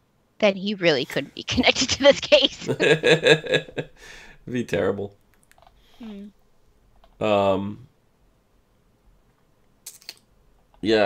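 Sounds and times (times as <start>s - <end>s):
computer keyboard clicks: 5.3s - 5.8s.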